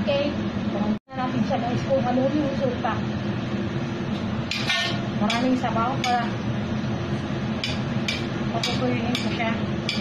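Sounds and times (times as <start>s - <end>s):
range hood fan drone: 0.0s - 10.0s.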